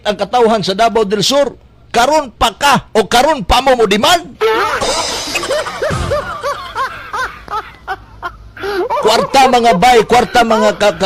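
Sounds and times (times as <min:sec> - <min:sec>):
person laughing: 0:04.4 - 0:09.3.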